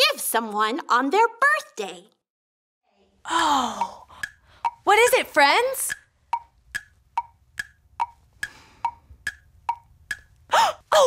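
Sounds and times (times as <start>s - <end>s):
wood-block tick-tock: 3.7s - 4.9s, 5.8s - 10.4s.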